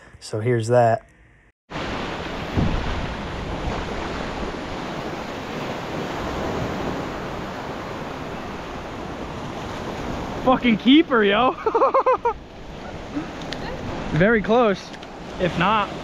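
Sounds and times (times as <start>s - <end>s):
wind on microphone: 2.2s - 10.4s.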